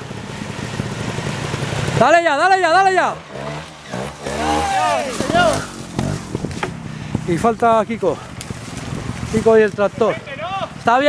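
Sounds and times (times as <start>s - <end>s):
motorcycle engine running: 0.0s - 11.0s
person shouting: 4.3s - 5.7s.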